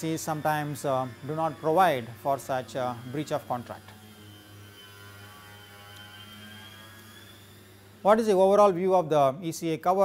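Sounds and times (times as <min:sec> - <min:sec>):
thin high whine: 0:00.0 - 0:09.0
low electrical hum: 0:00.0 - 0:10.0.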